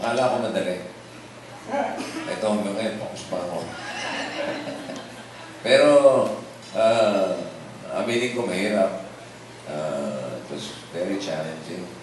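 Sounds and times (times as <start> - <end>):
people laughing: 3.6 - 5.6
high wavering laugh: 3.7 - 5.6.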